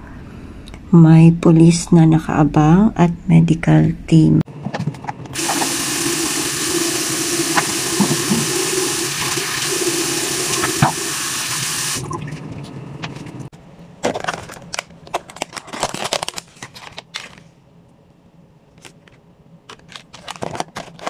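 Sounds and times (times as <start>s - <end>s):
tap running into sink: 5.4s - 12.1s.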